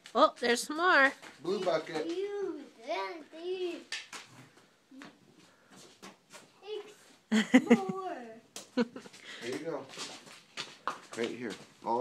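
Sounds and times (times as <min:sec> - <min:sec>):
person laughing: 0:07.3 - 0:08.2, 0:08.8 - 0:09.2.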